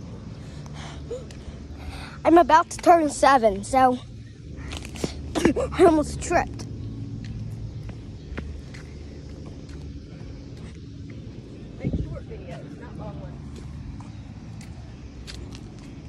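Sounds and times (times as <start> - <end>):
street traffic rumble: 0.0 - 16.0.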